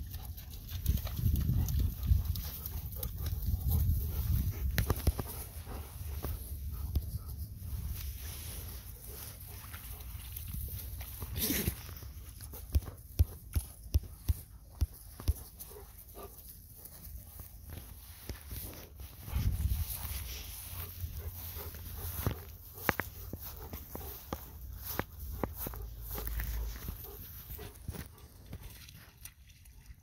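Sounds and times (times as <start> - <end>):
dog panting: 0.1 - 7.4, 20.2 - 24.6.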